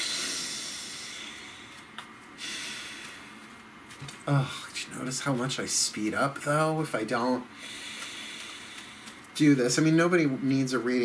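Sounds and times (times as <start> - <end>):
person breathing through the nose: 0.0 - 3.6, 7.5 - 9.2.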